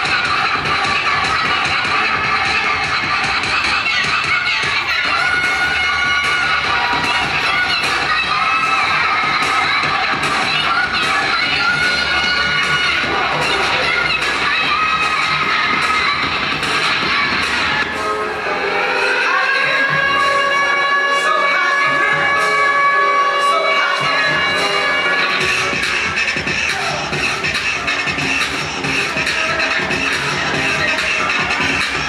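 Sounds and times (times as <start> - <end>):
crowd shouting and cheering: 0.0 - 32.0
loud dance music: 0.0 - 32.0.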